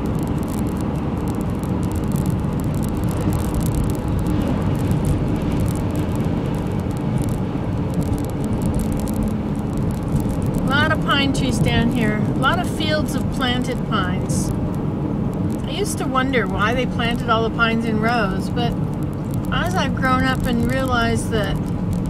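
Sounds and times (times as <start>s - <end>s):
car road noise from inside: 0.0s - 22.0s.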